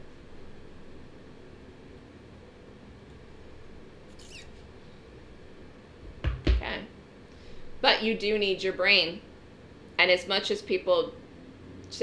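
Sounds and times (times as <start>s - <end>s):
high-pitched squeak: 4.1s - 4.6s.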